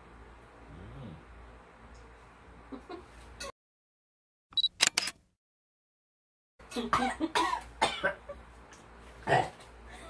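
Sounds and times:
man coughing with gasps: 0:06.9 - 0:08.2.

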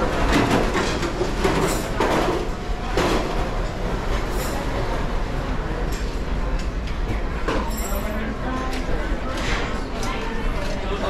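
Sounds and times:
dishes and cutlery clinking: 0:05.9 - 0:10.8.

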